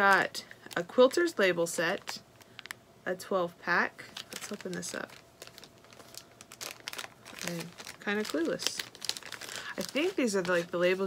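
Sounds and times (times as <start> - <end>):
plastic packaging crackling: 0.0 - 2.8, 4.0 - 11.0.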